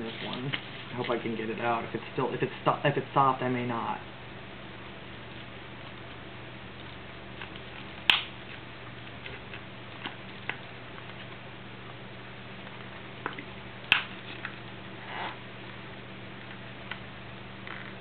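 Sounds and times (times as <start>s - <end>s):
steady low hum: 0.0s - 18.0s
plastic snapping: 7.4s - 8.3s, 13.3s - 14.5s.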